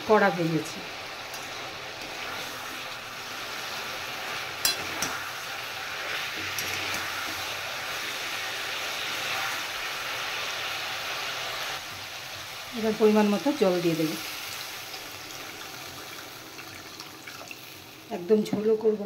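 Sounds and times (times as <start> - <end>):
fish sizzling in hot oil: 0.0 - 18.7
metal spatula clinking on wok: 4.6 - 5.2.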